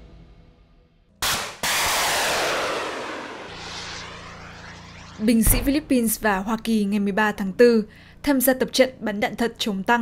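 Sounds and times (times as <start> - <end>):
explosion blasts: 1.2 - 6.7.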